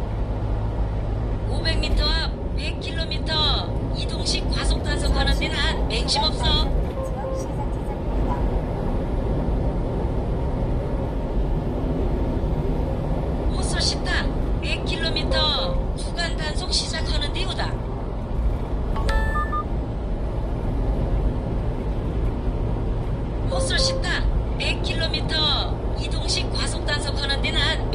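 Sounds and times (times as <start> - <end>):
truck road and engine noise: 0.0 - 27.9
short electronic beep: 19.0 - 19.7.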